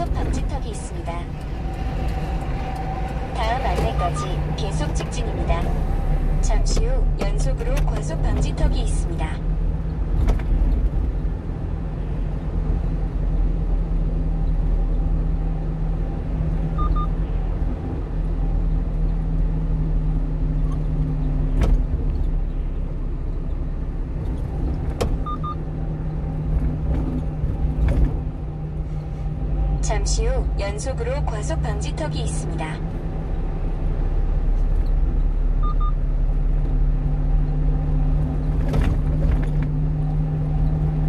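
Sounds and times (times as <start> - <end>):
road noise: 0.0 - 41.0
truck engine drone: 0.0 - 41.0.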